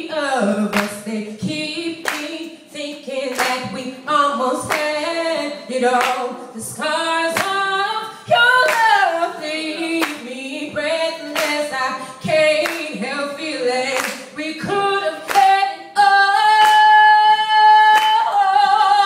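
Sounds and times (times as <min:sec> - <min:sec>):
woman singing a cappella: 0:00.0 - 0:19.0
audience clapping along: 0:02.0 - 0:02.3, 0:03.3 - 0:03.7, 0:08.6 - 0:09.0, 0:10.0 - 0:10.3, 0:11.3 - 0:11.6, 0:12.6 - 0:12.9, 0:13.9 - 0:14.2.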